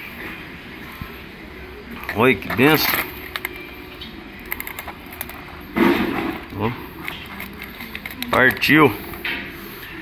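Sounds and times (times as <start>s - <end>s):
metal parts clicking and tapping: 7.0s - 8.8s.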